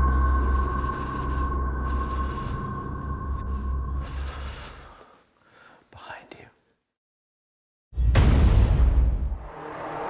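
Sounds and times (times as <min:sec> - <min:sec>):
low drone: 0:00.0 - 0:04.9
faint whisper: 0:05.9 - 0:06.6.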